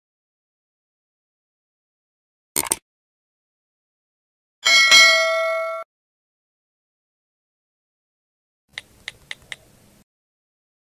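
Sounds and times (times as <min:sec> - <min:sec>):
notification bell ding: 0:04.6 - 0:05.9.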